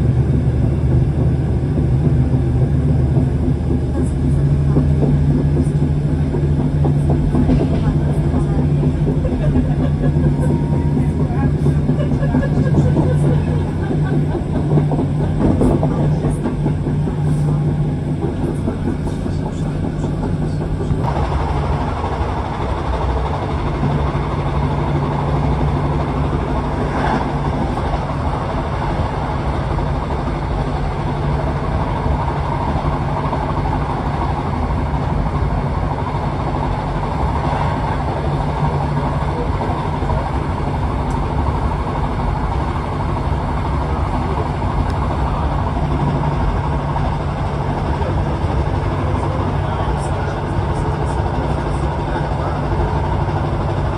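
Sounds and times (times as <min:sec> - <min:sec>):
train engine hum: 0:00.0 - 0:53.9
train wheels rumbling on rails: 0:00.0 - 0:53.9.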